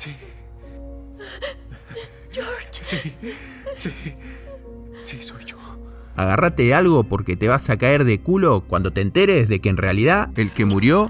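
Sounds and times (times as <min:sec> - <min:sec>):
soft film score: 0:00.0 - 0:11.0.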